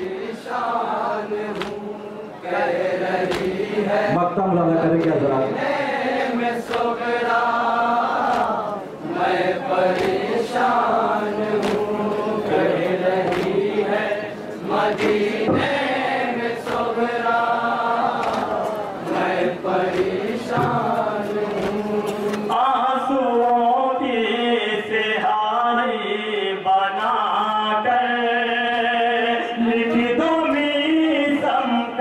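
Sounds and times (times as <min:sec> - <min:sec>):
men chanting in unison: 0:00.0 - 0:32.0
chest-beating slaps: 0:01.5 - 0:01.9, 0:03.2 - 0:03.7, 0:09.9 - 0:10.4, 0:11.6 - 0:12.0, 0:13.2 - 0:13.7, 0:18.1 - 0:18.8.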